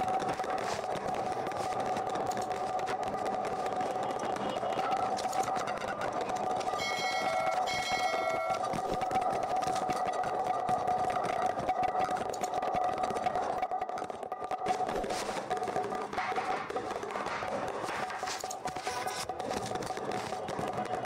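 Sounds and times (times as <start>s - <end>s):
short ringing tones: 6.8s - 8.6s.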